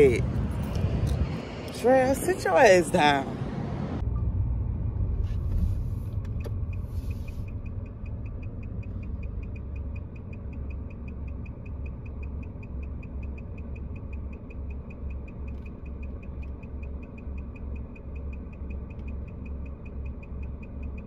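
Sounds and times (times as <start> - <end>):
car engine running: 0.0 - 21.0
turn signal ticking: 4.0 - 21.0.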